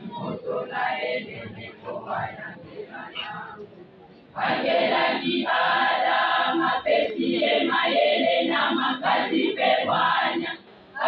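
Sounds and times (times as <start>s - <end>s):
women's choir singing: 0.0s - 3.6s, 4.4s - 11.0s.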